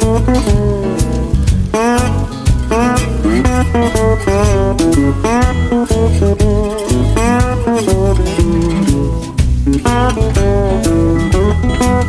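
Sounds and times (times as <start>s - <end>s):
bass line: 0.0s - 12.0s
jazz guitar single-note lines: 0.0s - 12.0s.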